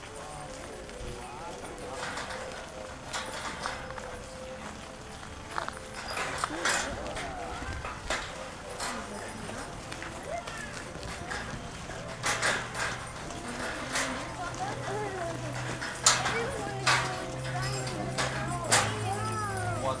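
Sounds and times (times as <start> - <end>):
children and adults chattering: 0.0 - 20.0.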